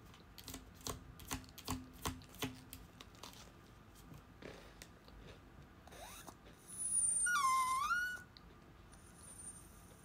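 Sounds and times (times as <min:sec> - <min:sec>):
pet's drawn-out cry: 0:07.1 - 0:08.3.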